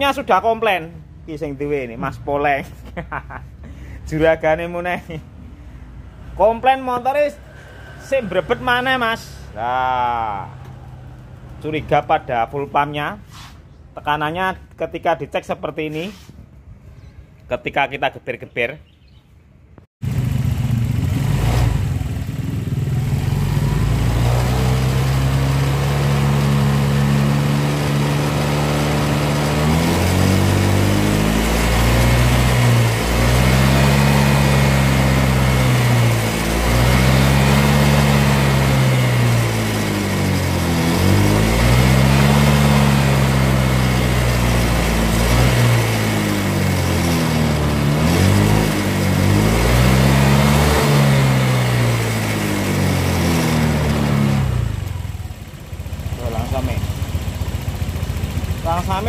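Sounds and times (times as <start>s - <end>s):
scooter engine idling and revving: 0.0s - 13.9s, 20.0s - 59.0s.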